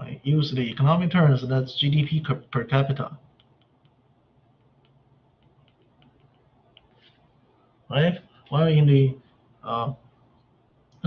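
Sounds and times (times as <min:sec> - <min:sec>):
stylus ticking on a tablet: 0:03.3 - 0:07.0.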